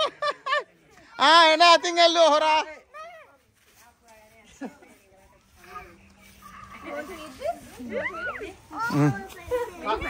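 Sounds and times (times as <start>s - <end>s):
faint voices of children and adults: 0.0s - 10.0s.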